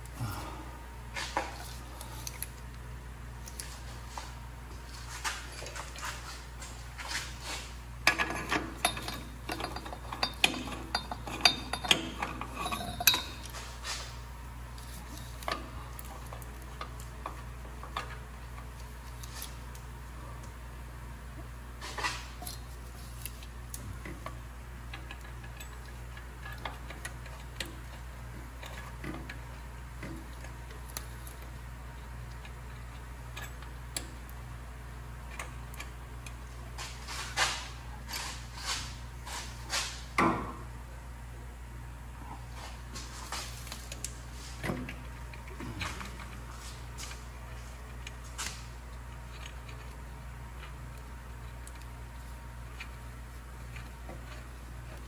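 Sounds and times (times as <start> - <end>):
steady low hum: 0.0 - 55.0
metal washers and nuts clinking: 8.0 - 14.0.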